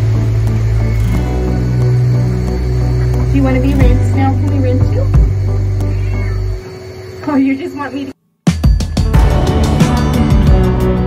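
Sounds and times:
background music: 0.0 - 11.0
cat meowing: 0.7 - 1.2, 5.5 - 6.8.

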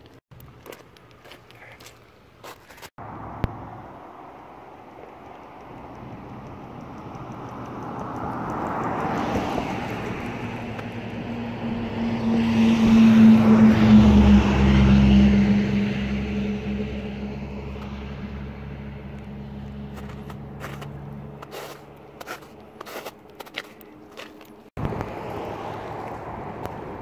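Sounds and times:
vehicle passing by: 3.0 - 27.0.

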